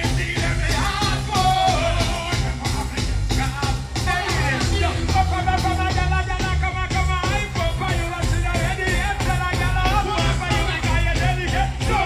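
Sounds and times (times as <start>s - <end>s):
live reggae music: 0.0s - 12.0s.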